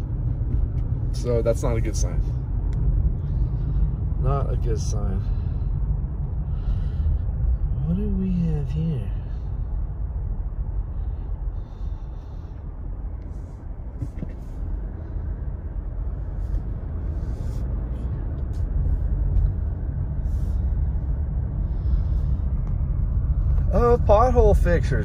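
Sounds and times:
car engine and tyres rumbling: 0:00.0 - 0:25.0.

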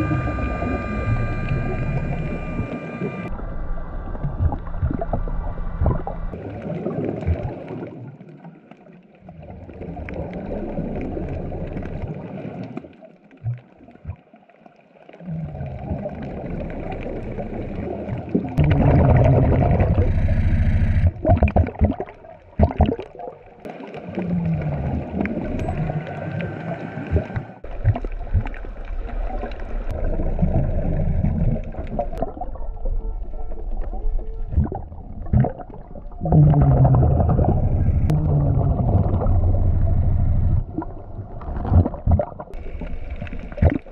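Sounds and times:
diver exhaling bubbles underwater: 0:15.2 - 0:32.6, 0:34.5 - 0:43.9.

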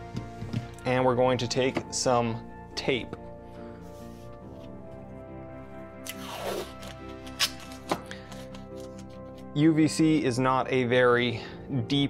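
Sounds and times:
background music: 0:00.0 - 0:12.0
tape ripping off roll: 0:06.0 - 0:09.1
tape tearing snaps: 0:06.0 - 0:09.4.

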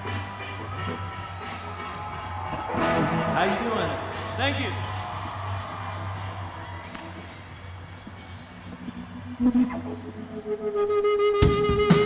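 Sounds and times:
faint crowd noise: 0:00.0 - 0:11.0.

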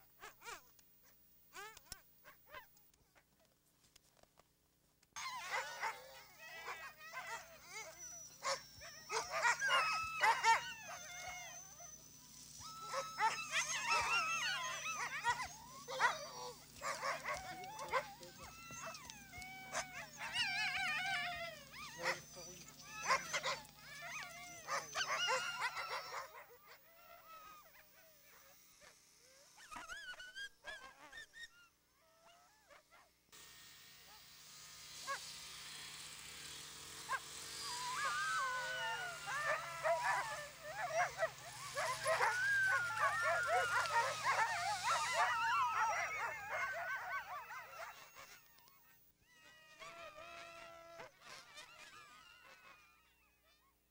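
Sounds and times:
dogs whining and barking: 0:00.0 - 0:02.8, 0:05.2 - 0:33.1, 0:34.0 - 0:53.7.

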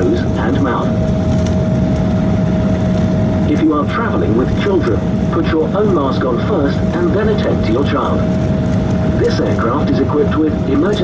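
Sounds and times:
constant-pitch whine: 0:00.0 - 0:11.0
jet engine rumble: 0:00.0 - 0:11.0.

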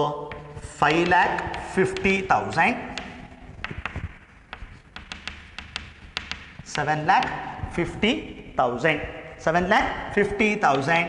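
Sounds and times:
chalk tapping on chalkboard: 0:00.3 - 0:08.1.

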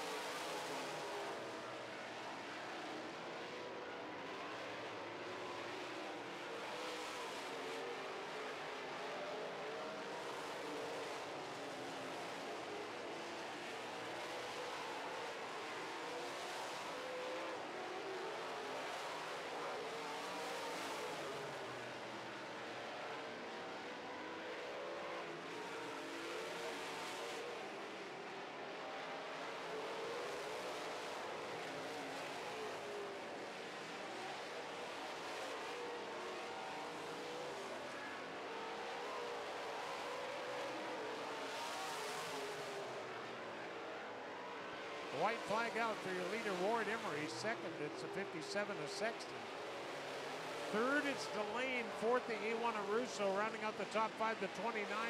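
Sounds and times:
race car engines: 0:00.0 - 0:55.0.

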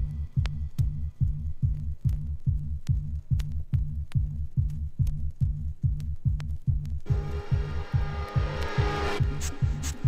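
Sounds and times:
electronic dance music kick drum: 0:00.0 - 0:10.0
noise riser: 0:07.1 - 0:10.0.

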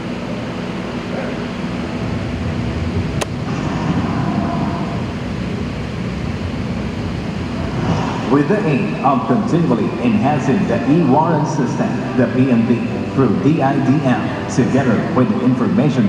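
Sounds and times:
steady rumbling background noise: 0:00.0 - 0:16.0.

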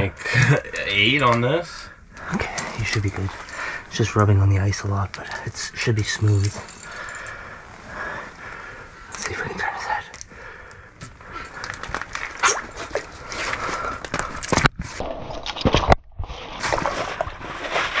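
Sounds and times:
water sloshing and splashing: 0:02.4 - 0:03.9, 0:11.6 - 0:18.0.

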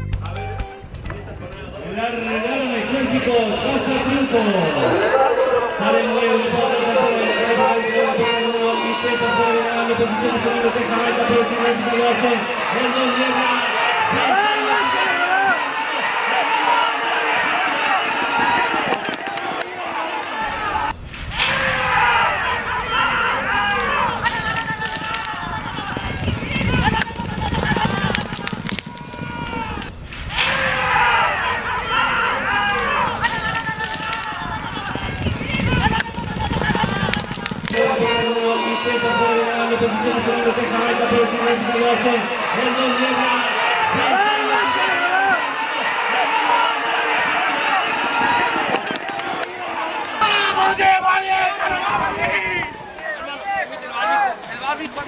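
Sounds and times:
spectators shouting and cheering: 0:00.0 - 0:55.0
deep rumbling noise: 0:20.5 - 0:31.4.

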